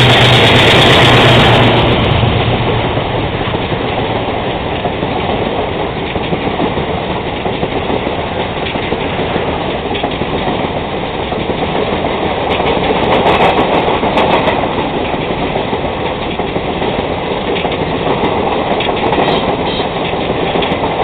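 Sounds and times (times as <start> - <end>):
train wheels rumbling on rails: 0.0 - 21.0
wheel clacks: 0.0 - 21.0.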